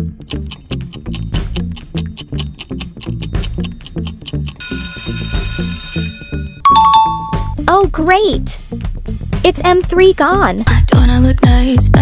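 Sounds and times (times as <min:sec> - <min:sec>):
low electronic beat: 0:00.0 - 0:04.6
fast clock ticking: 0:00.0 - 0:05.7
ringing alarm tone: 0:02.6 - 0:07.5.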